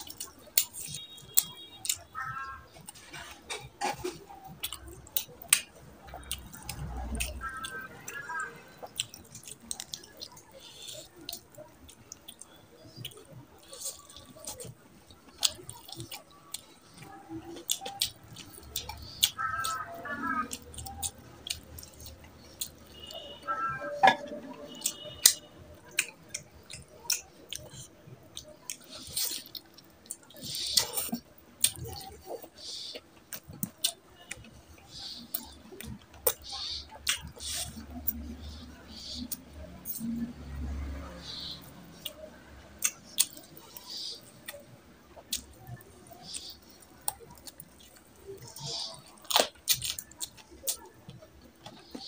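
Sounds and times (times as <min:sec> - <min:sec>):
open-mouthed chewing: 0:00.0 - 0:52.0
lip smacks: 0:24.2 - 0:52.0.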